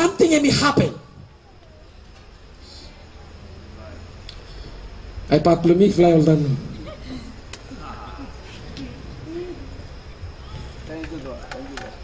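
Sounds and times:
sound system hum: 0:00.0 - 0:12.0.

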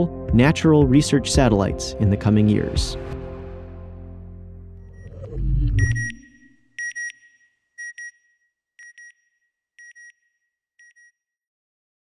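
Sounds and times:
deep swell: 0:02.2 - 0:06.6
sonar-like double beeps: 0:04.8 - 0:08.2.

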